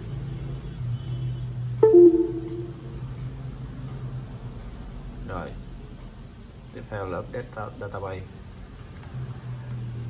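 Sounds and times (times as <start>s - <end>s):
two-note computer chime: 1.8s - 3.0s.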